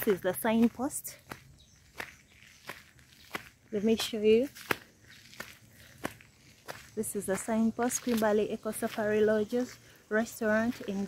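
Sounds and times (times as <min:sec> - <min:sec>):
faint footsteps: 0:00.0 - 0:11.0.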